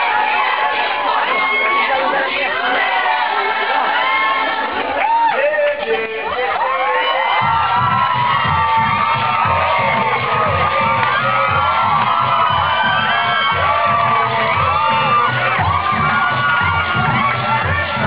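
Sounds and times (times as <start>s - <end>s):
audience shouting and cheering: 0.0s - 18.0s
dance music with pulsing bass: 7.5s - 18.0s.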